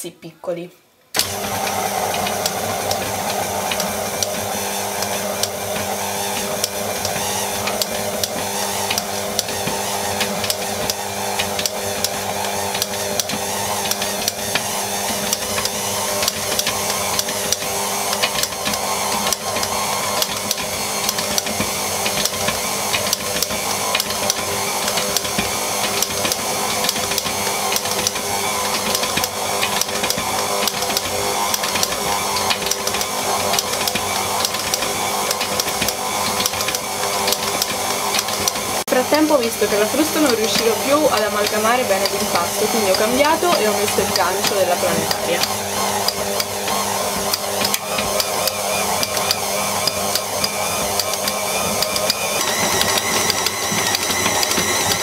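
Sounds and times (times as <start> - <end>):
stand mixer running: 1.2 - 55.0.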